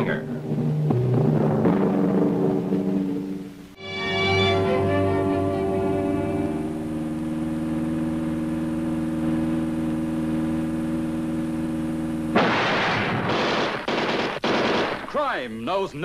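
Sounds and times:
loud crash: 0.0s - 3.8s, 12.3s - 15.1s
orchestral chord: 0.0s - 7.1s
gunfire bursts: 12.3s - 15.3s.

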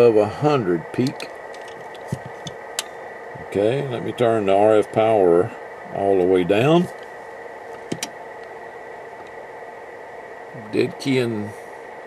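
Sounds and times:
faint high whine: 0.0s - 12.0s
steady hiss: 0.0s - 12.0s.

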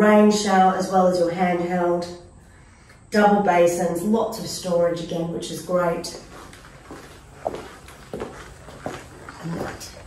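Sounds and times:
footsteps on tiled floor: 5.9s - 10.0s.

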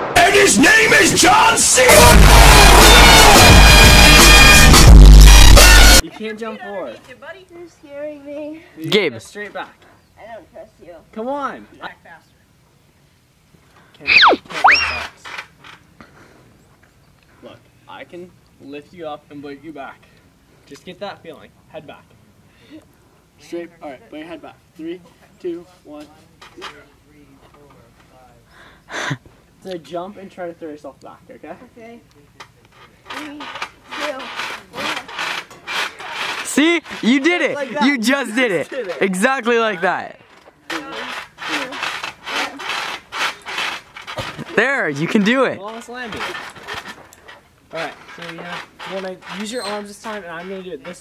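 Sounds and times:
trampoline springs creaking: 14.0s - 16.0s, 32.6s - 39.5s, 40.2s - 51.0s
person breathing hard: 28.5s - 29.3s.

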